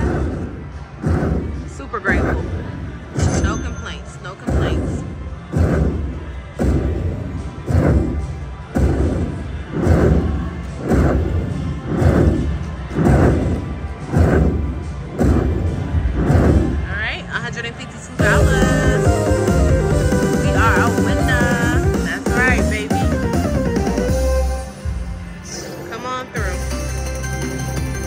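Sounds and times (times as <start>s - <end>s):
slot machine game music: 18.2s - 24.8s, 25.4s - 28.0s.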